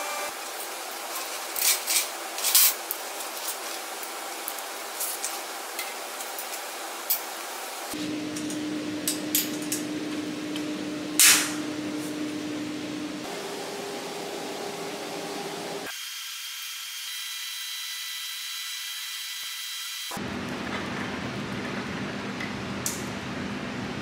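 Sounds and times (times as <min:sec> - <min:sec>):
steady hum: 0:07.9 - 0:15.9.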